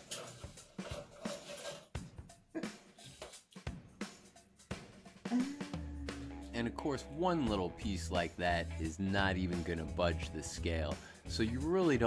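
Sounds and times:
faint music: 5.3 - 12.0.

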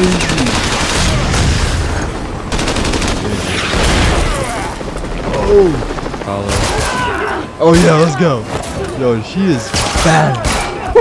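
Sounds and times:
explosions: 0.5 - 2.3
gunfire: 9.7 - 10.9.

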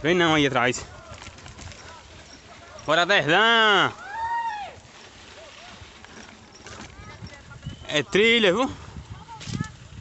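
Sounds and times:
bicycle tyres on dirt trail: 0.0 - 10.0.

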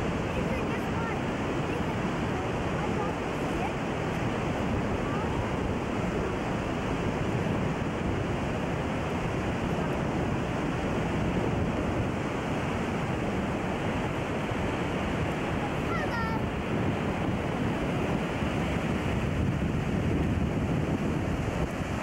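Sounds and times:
waterfall rushing: 12.1 - 17.2.

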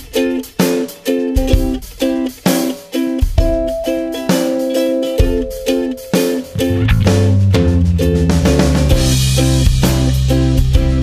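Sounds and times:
steady beat: 3.4 - 9.5
plucked guitar chords: 3.4 - 10.1.

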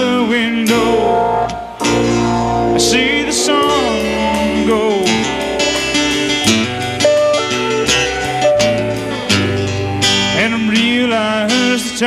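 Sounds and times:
bass notes: 0.0 - 11.4
acoustic guitar chords: 0.0 - 12.0.

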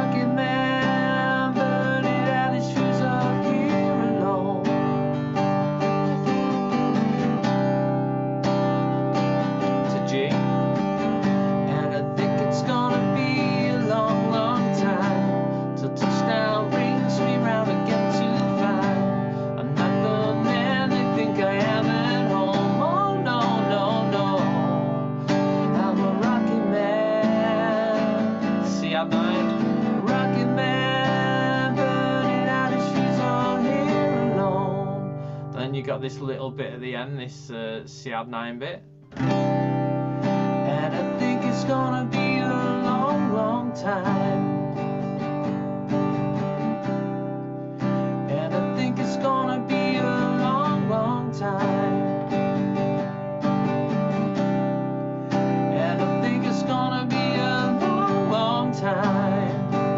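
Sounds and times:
man singing: 0.0 - 5.7, 9.6 - 38.8, 40.5 - 44.6, 48.2 - 52.6, 55.6 - 59.9
acoustic guitar strumming: 0.0 - 59.9.

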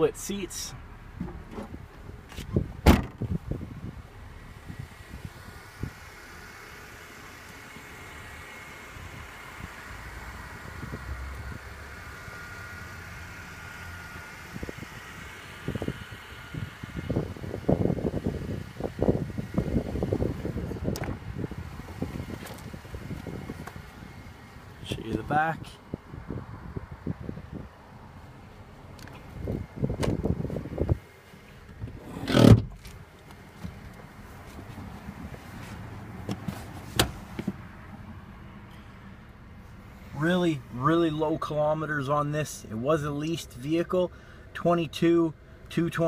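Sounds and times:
outdoor background noise: 0.0 - 46.0
car door click: 1.2 - 3.3, 29.0 - 30.3, 36.2 - 37.6
car trunk lid thump: 1.2 - 3.4, 29.9 - 30.3, 31.7 - 32.8.

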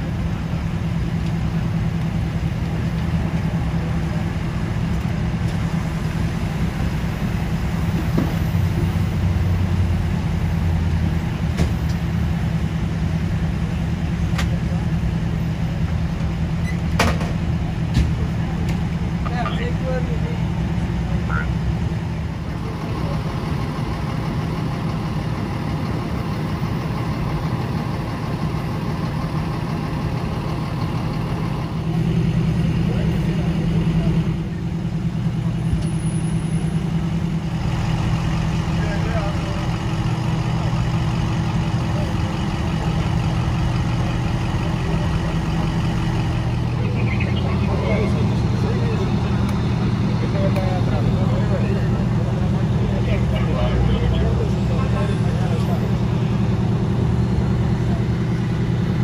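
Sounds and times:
engines idling: 0.0 - 59.0
faint voices: 22.2 - 35.8, 36.7 - 59.0.

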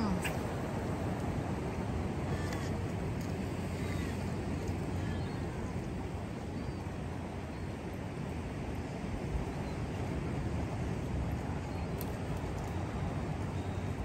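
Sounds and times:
wind rumble on microphone: 0.0 - 14.0.

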